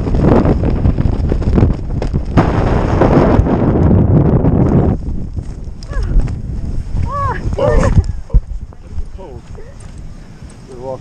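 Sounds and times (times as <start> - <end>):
wind rumble on microphone: 0.0 - 11.0.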